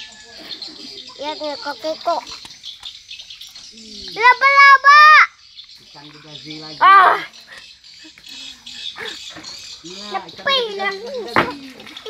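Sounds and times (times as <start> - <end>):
shrill high-pitched shout: 4.2 - 5.4.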